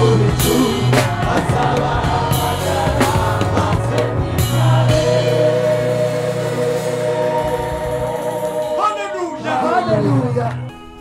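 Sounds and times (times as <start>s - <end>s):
electronic keyboard sustained chord: 0.0s - 11.0s.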